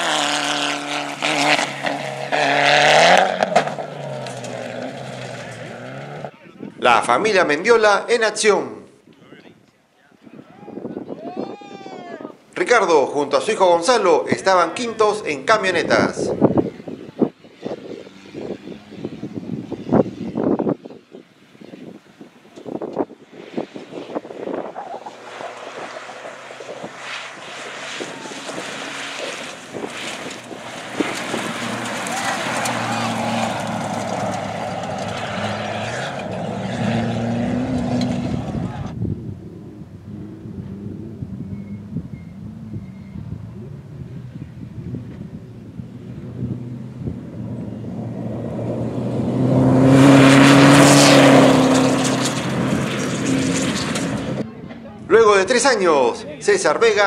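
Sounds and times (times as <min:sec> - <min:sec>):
truck engine revving hard: 0:00.0 - 0:06.3, 0:24.1 - 0:39.0, 0:40.1 - 0:54.4
tyres on gravel road: 0:00.0 - 0:11.0, 0:12.2 - 0:57.0.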